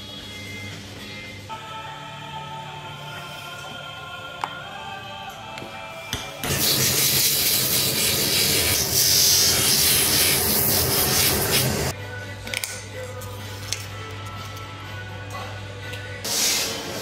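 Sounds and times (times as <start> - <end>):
background music: 0.0 - 8.4, 9.0 - 17.0.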